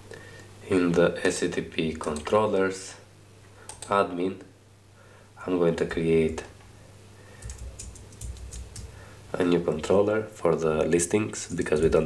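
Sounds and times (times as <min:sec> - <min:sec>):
computer keyboard typing: 0:03.7 - 0:04.0, 0:07.4 - 0:08.9.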